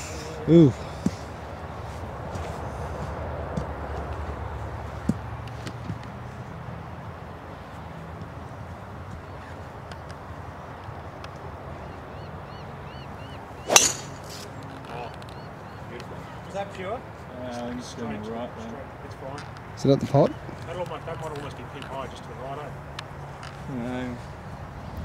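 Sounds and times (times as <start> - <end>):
outdoor background hiss: 0.0 - 25.0
golf club striking ball: 13.7 - 14.5.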